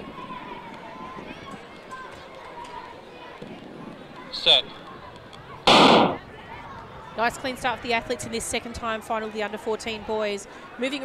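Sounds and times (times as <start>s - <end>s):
starting gun bang: 5.7s - 6.2s.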